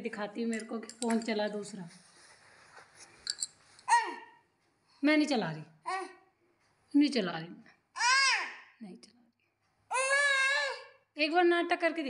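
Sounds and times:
toddler high-pitched vocal sound: 3.9s - 4.4s, 5.9s - 6.2s, 8.0s - 8.7s, 9.9s - 11.0s.

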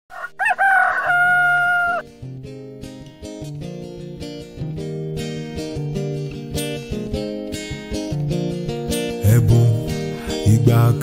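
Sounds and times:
rooster crowing: 0.1s - 2.0s.

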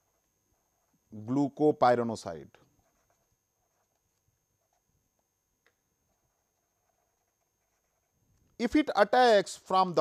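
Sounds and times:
pen ticking on paper: 2.6s - 8.2s.

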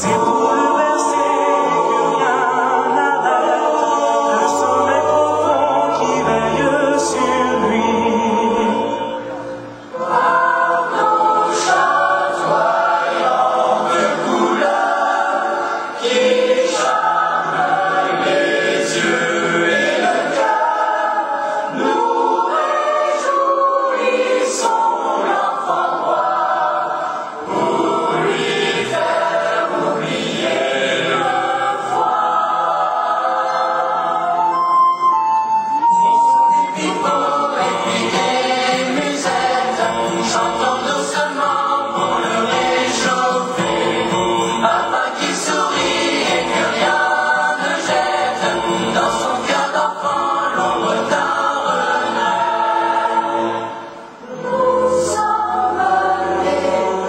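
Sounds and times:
choir singing in harmony: 0.0s - 57.0s.

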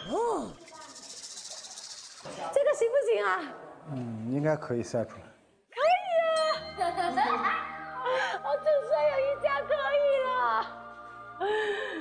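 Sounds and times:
high fluttering hiss: 0.2s - 3.0s.

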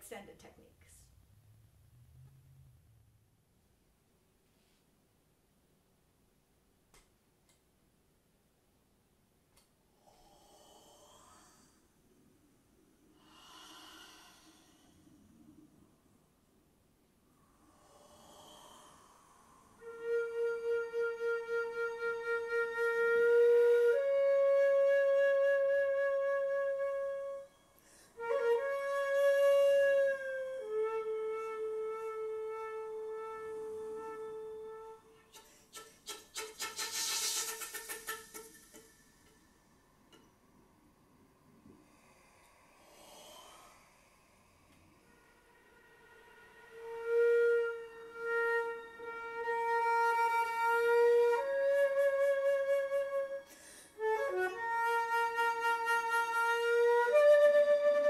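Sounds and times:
rapid breathy flute pulses: 17.6s - 39.6s, 41.8s - 58.0s
flute playing long held notes: 19.8s - 35.4s, 45.2s - 58.0s.

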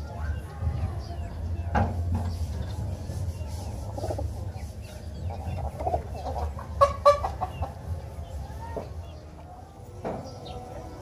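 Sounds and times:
clucking bird calls: 0.0s - 11.0s.

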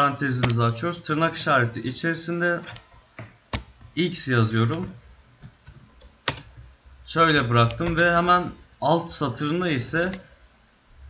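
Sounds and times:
keyboard key clicks: 4.7s - 6.6s, 9.9s - 10.2s.

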